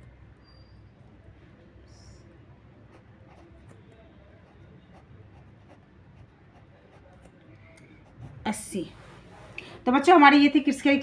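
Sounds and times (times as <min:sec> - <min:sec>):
pen scratching on paper: 0:02.8 - 0:03.8, 0:04.4 - 0:07.3, 0:08.0 - 0:08.9.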